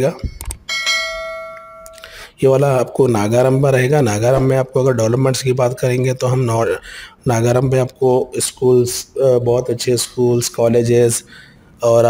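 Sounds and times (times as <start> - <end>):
bright bell ding: 0.1 - 2.1.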